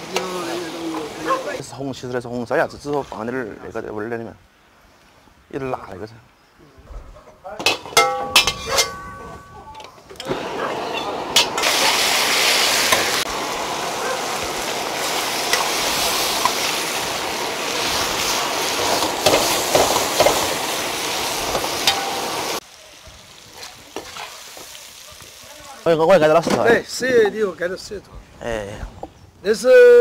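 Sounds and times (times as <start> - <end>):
stir-frying sizzling in a wok: 0.0 - 1.6, 10.8 - 26.6
metal ladle scraping a pan: 7.7 - 9.2.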